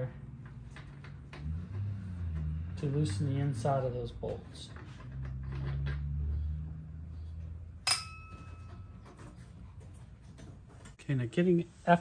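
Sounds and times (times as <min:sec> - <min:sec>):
metal clink on steel door: 0:07.8 - 0:09.0.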